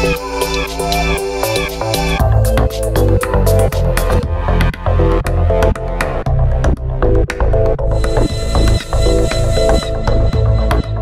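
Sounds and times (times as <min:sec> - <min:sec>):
electronic dance music: 0:08.0 - 0:11.0.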